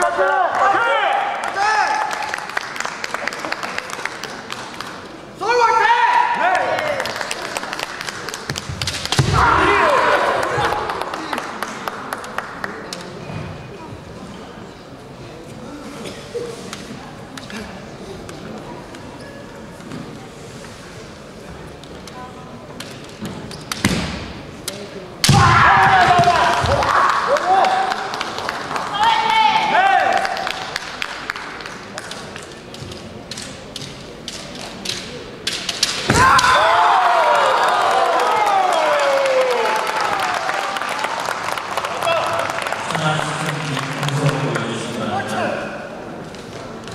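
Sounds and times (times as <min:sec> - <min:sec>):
people yelling: 0:09.2 - 0:10.9, 0:25.3 - 0:28.0, 0:28.9 - 0:30.3, 0:36.1 - 0:40.8
bamboo swords clacking: 0:32.1 - 0:36.6.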